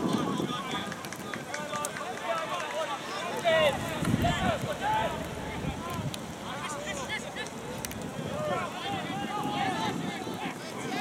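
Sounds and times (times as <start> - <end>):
people shouting and chattering: 0.0 - 11.0.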